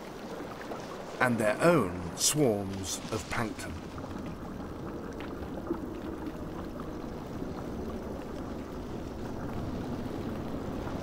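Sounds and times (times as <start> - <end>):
low watery underwater rumble: 0.0 - 11.0.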